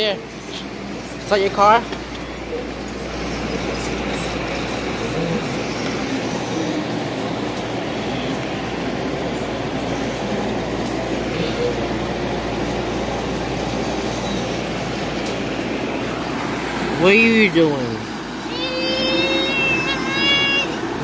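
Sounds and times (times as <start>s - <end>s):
washers and dryers rumbling: 0.0s - 21.0s.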